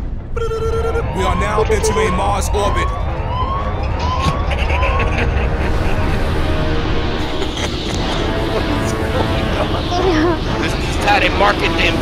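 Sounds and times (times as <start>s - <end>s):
deep steady rumble: 0.0s - 12.0s
rising electronic alarm whoop: 0.4s - 6.8s.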